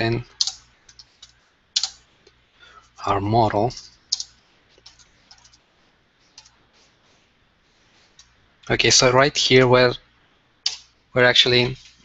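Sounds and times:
computer keyboard keys clicking: 0.4s - 2.0s, 3.7s - 5.6s, 6.4s - 6.6s.

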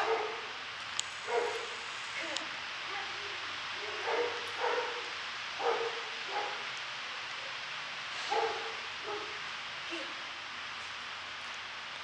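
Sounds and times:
dog barking: 0.0s - 0.6s, 1.2s - 1.8s, 3.8s - 6.7s, 8.2s - 9.4s.

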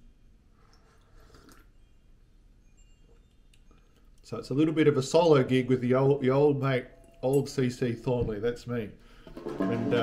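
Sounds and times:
faint sip from a mug: 0.5s - 1.9s.

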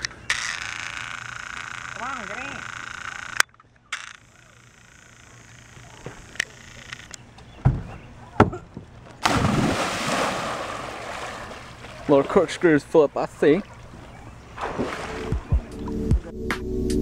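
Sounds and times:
thump on wooden boards: 7.6s - 8.9s
loud water splash: 9.2s - 12.1s, 14.6s - 15.4s.

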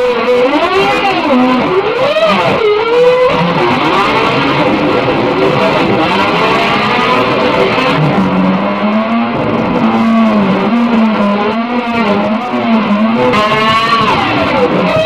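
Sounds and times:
electric guitar bending notes: 0.0s - 15.0s.

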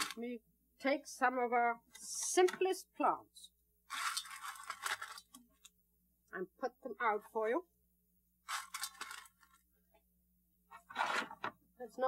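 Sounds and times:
gravel scraping on metal tray: 3.9s - 5.3s.

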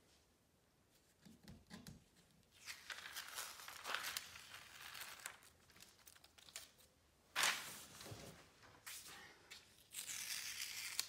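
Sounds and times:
tape peeling off paper: 2.5s - 7.6s, 9.8s - 11.0s.

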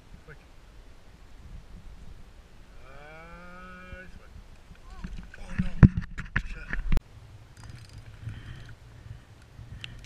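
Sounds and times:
distant cow mooing: 2.7s - 4.0s.

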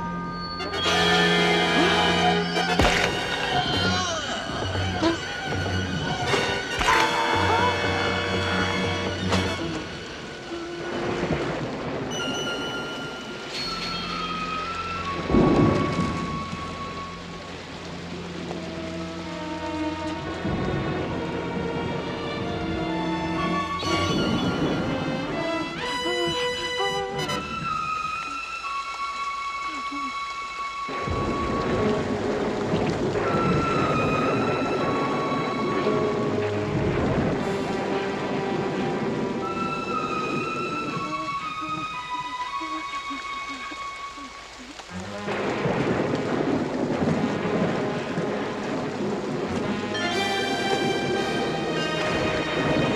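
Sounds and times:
eerie sustained score music: 0.0s - 52.9s
steady rain: 0.0s - 52.9s
thunder rumble: 0.9s - 13.7s, 14.6s - 28.3s, 30.9s - 43.2s, 44.9s - 52.9s.

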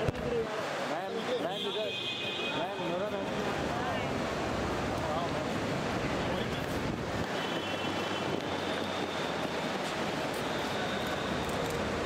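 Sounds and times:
traffic: 0.0s - 12.0s.

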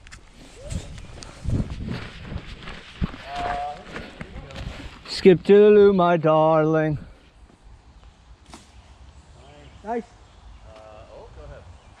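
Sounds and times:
footsteps on leafy dirt path: 0.2s - 5.3s.

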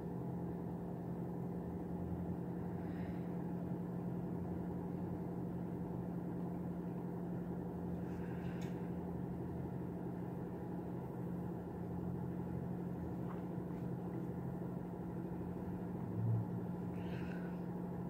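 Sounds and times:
toaster oven humming: 0.0s - 18.0s.

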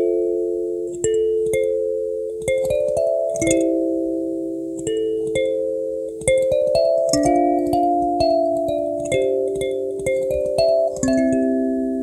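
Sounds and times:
kalimba slow melody: 0.0s - 12.0s
soft pluck clicks: 4.8s - 11.6s.

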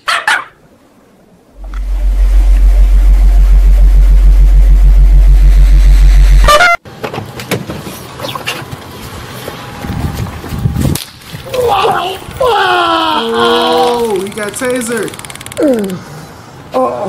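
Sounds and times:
distorted bass-boosted drone: 1.5s - 6.8s
short blast: 1.6s - 6.8s.

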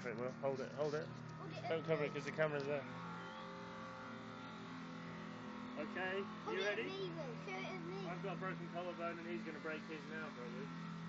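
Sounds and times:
faint engine hum: 0.0s - 11.0s.

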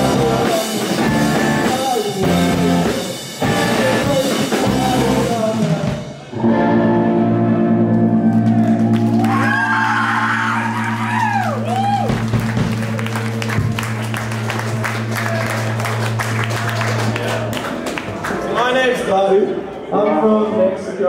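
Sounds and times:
rock band chord ringing out: 0.0s - 9.3s
crowd cheering and clapping: 7.8s - 19.1s.

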